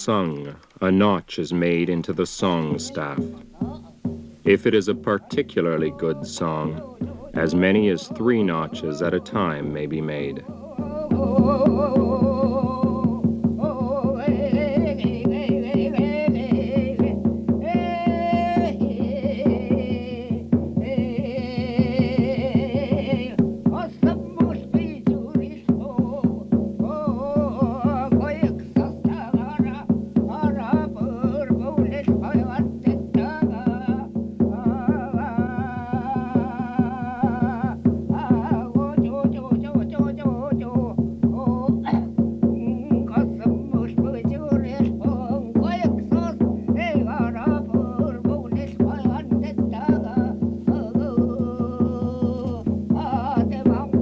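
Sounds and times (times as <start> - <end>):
man singing: 0.0 - 54.0.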